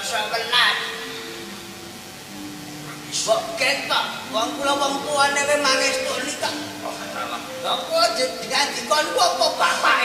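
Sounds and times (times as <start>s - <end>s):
gamelan ringing notes: 0.0s - 10.0s.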